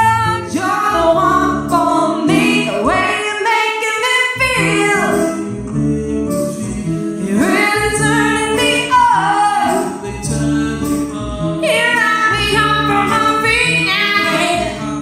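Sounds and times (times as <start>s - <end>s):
woman singing: 0.0s - 5.4s, 7.2s - 10.4s, 11.6s - 15.0s
strummed acoustic guitar: 0.0s - 15.0s.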